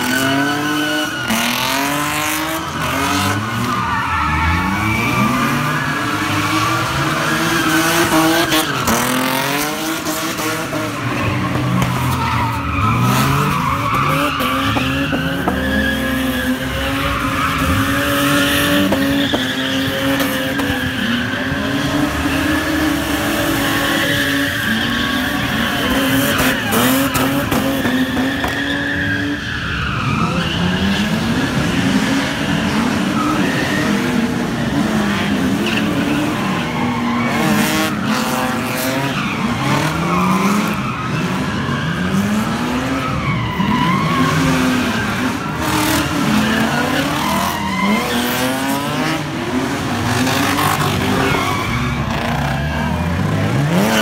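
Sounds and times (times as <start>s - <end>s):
car engines revving hard: 0.0s - 54.0s
tyres squealing and skidding: 0.0s - 54.0s.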